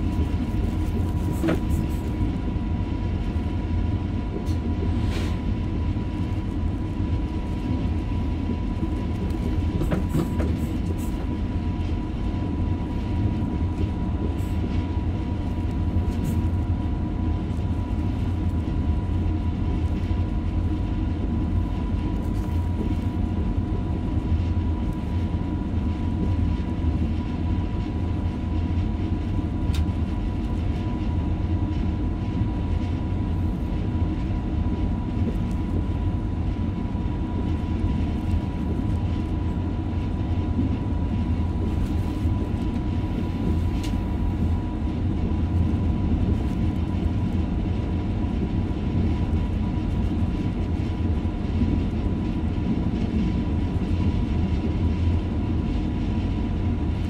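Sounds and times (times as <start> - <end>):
train wheels rumbling on rails: 0.0 - 57.0.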